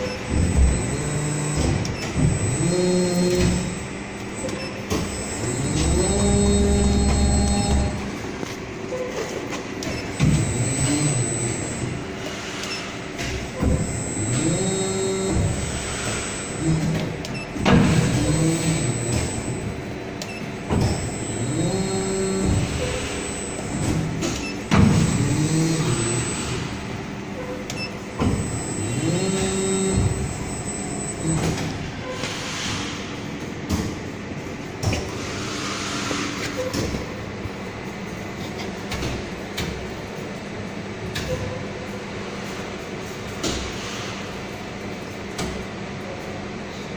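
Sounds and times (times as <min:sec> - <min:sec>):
hydraulic pump whining: 0:00.0 - 0:36.8
machine clunk: 0:23.7 - 0:25.3.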